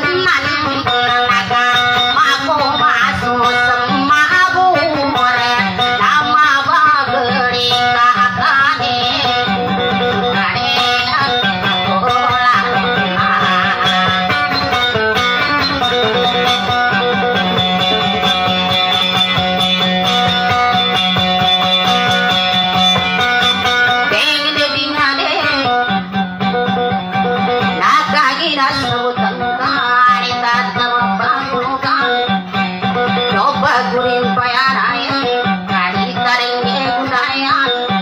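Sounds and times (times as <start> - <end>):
plucked string instrument melody: 0.0 - 38.0.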